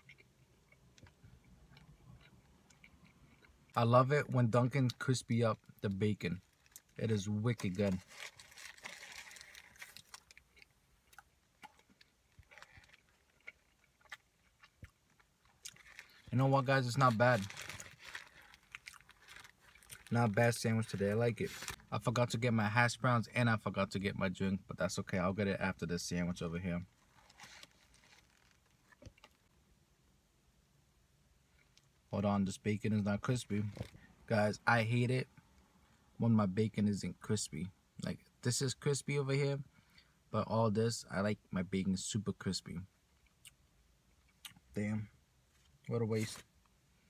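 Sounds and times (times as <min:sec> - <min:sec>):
chewing sandwich: 0:00.0 - 0:03.8, 0:07.7 - 0:16.4
soft crunches: 0:06.4 - 0:21.8, 0:26.9 - 0:29.5.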